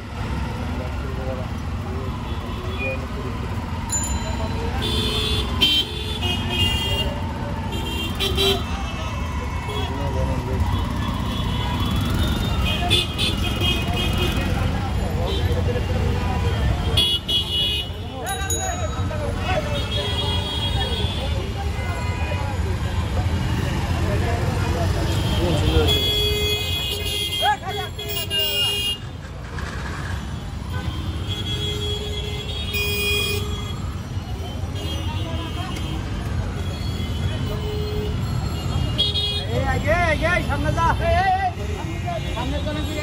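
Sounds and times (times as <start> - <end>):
crowd voices: 0.0 - 32.4.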